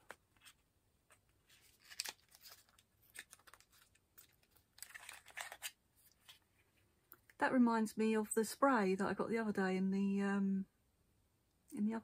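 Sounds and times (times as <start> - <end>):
paper packaging rustling: 0.0 - 6.8.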